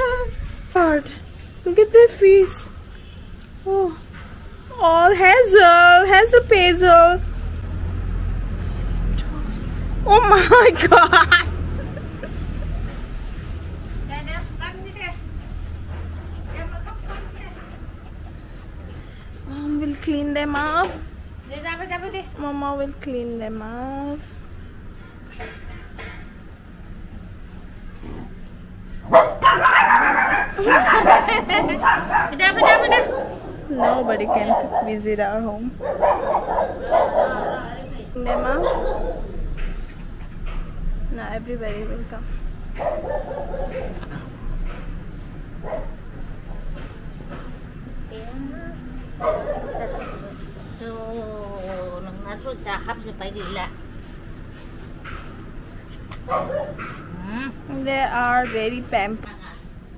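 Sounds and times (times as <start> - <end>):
dogs barking and yapping: 28.0 - 41.0, 42.4 - 47.9, 49.1 - 50.8, 53.3 - 57.3.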